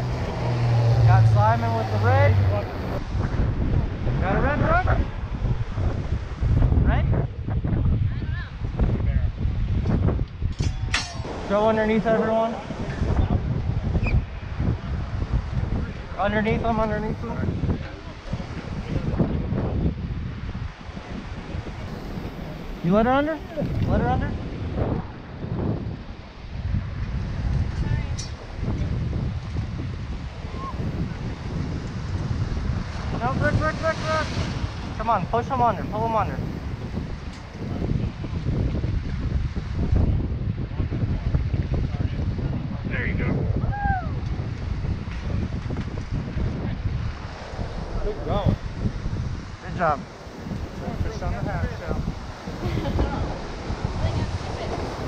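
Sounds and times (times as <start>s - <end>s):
wind buffeting microphone: 0.0s - 55.0s
people talking: 0.3s - 3.0s, 11.0s - 13.4s, 16.2s - 19.2s, 21.8s - 24.4s, 50.8s - 53.4s, 54.0s - 55.0s
surf breaking around pilings: 8.7s - 40.6s, 44.1s - 55.0s.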